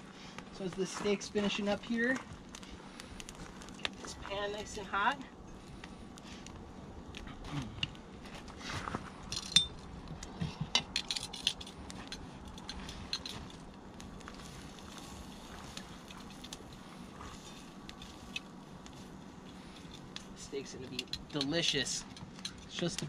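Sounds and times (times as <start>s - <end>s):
crackle of burning coals: 0.0s - 23.0s.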